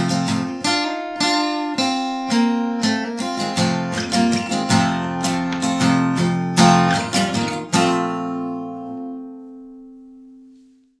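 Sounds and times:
acoustic guitar strumming: 0:00.0 - 0:10.9.

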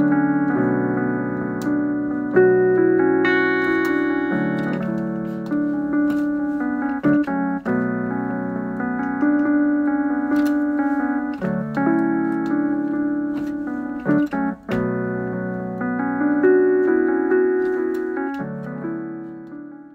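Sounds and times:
sustained piano chords: 0:00.0 - 0:19.9.

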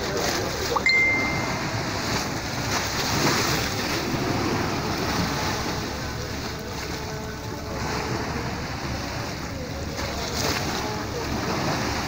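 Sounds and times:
waves breaking over rocks: 0:00.0 - 0:12.0.

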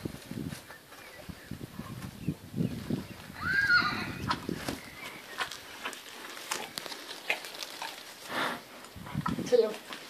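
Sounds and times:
horse hooves thudding on grass: 0:00.0 - 0:10.0.

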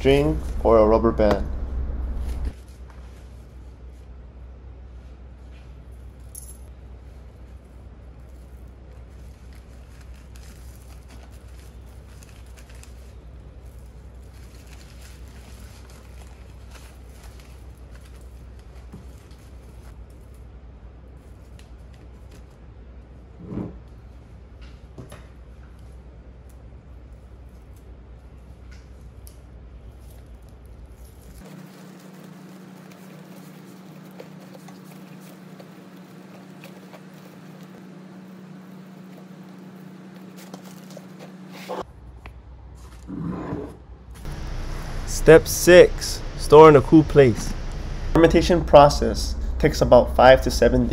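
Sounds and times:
steady low hum: 0:00.0 - 0:10.0, 0:25.4 - 0:42.7, 0:43.8 - 0:50.9
paper towel rustling: 0:02.1 - 0:04.0, 0:08.2 - 0:20.0, 0:31.0 - 0:41.8, 0:44.2 - 0:50.9
higher steady tone: 0:44.3 - 0:50.9.

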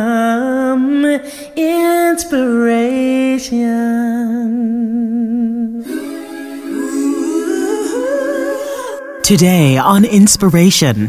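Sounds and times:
voices singing sustained chord: 0:05.7 - 0:09.8.

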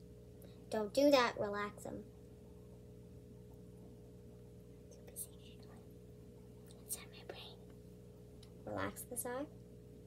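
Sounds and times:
low electrical hum: 0:00.0 - 0:10.0
person whispering: 0:04.9 - 0:05.9, 0:06.7 - 0:07.7.

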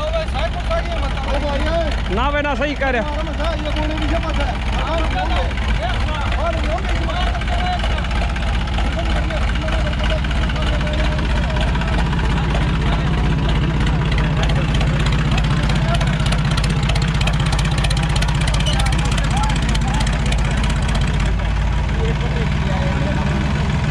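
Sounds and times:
crowd voices: 0:00.0 - 0:23.9
tractor diesel engine running: 0:00.0 - 0:23.9.

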